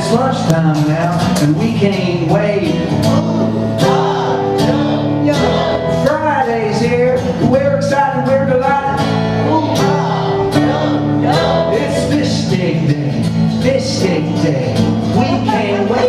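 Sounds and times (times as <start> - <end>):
acoustic guitar strumming: 0.0 - 16.0
man singing: 0.0 - 16.0.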